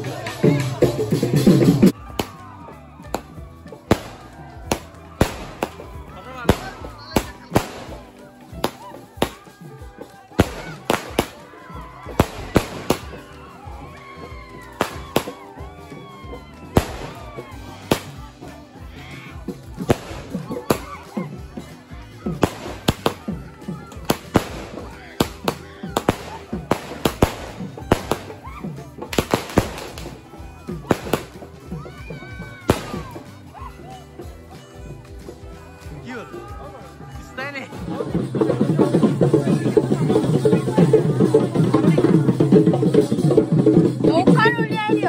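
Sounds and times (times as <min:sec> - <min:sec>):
background music: 0:00.0 - 0:45.0
firecracker bang: 0:03.9 - 0:05.8
fireworks bangs: 0:03.9 - 0:05.9, 0:06.5 - 0:09.4, 0:16.8 - 0:18.2, 0:24.1 - 0:28.4, 0:29.0 - 0:30.1.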